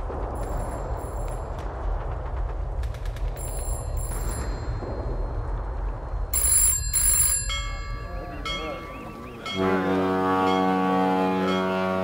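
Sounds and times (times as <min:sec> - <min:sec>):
steady low rumble: 0:00.0 - 0:09.6
telephone bell ringing: 0:03.4 - 0:05.2, 0:06.3 - 0:09.6.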